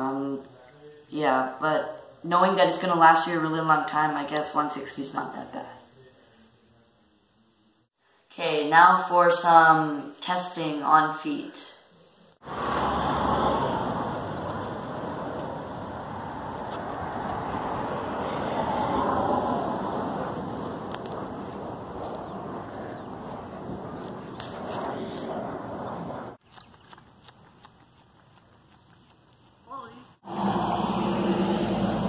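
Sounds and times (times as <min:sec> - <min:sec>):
steady rushing outdoor noise: 0:12.4 - 0:26.4.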